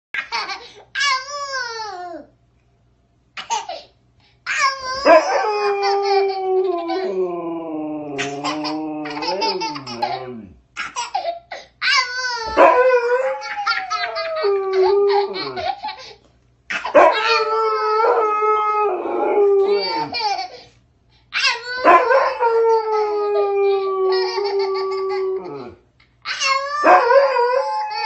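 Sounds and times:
dog howling: 5.0s - 10.6s, 12.4s - 15.7s, 17.0s - 20.2s, 21.8s - 25.8s, 26.8s - 28.0s
toddler laughing and squealing: 8.2s - 12.6s, 13.4s - 16.1s, 19.6s - 20.6s.

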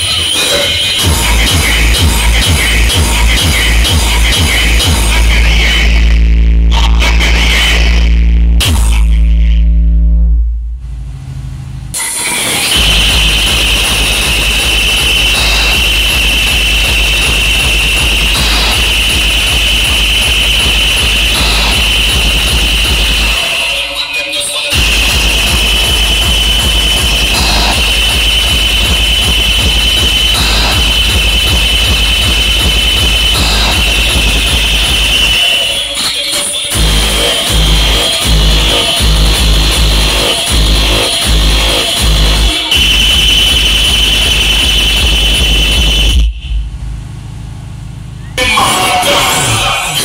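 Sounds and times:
dance music with heavy bass: 0.0s - 50.0s
low hum: 8.1s - 12.0s, 36.8s - 48.8s.

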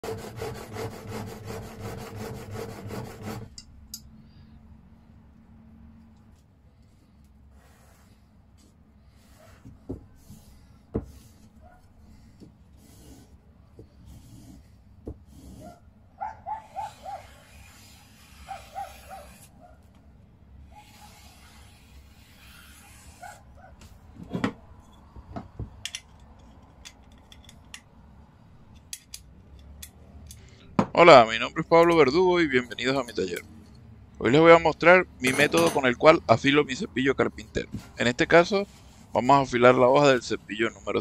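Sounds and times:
animal yipping: 15.6s - 17.4s, 18.5s - 19.8s.

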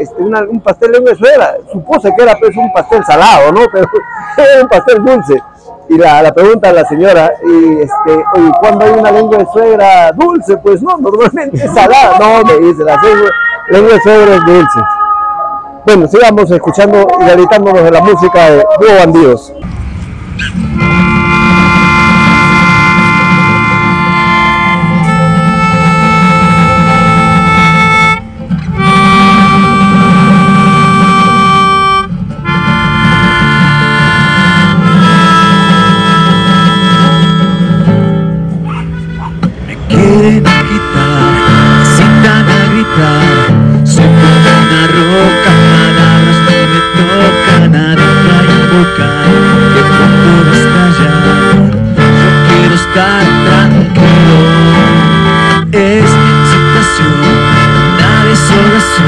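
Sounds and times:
melodica melody: 0.0s - 19.7s, 20.5s - 59.0s
classical guitar: 20.4s - 59.0s.

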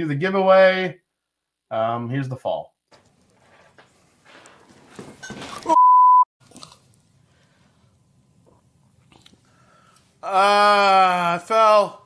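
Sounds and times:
scuffle and clatter: 2.9s - 5.7s
censor bleep: 5.7s - 6.3s
man crying out: 10.2s - 11.9s.

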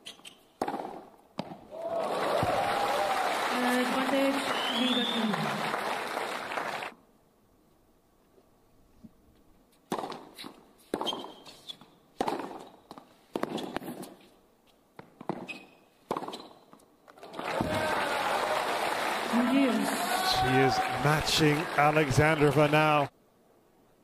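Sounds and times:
tennis racket striking ball: 0.6s - 1.6s, 9.9s - 11.4s, 12.2s - 14.2s, 15.0s - 16.6s
crowd applause and cheering: 1.7s - 6.9s, 17.2s - 23.1s.

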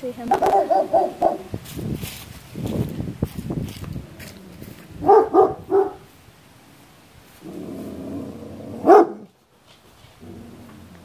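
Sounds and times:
dog barking: 0.3s - 1.5s, 5.0s - 6.1s, 8.8s - 9.3s.

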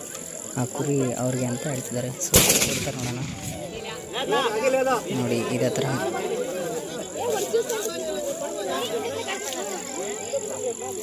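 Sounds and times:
gunshot: 2.3s - 4.0s
men talking: 3.0s - 9.1s.

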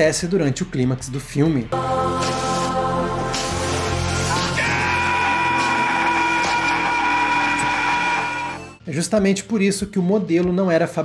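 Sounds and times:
drone of held tones: 1.8s - 8.8s.

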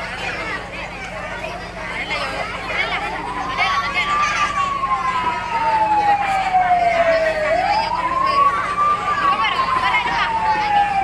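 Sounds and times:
siren wailing: 2.7s - 11.0s.

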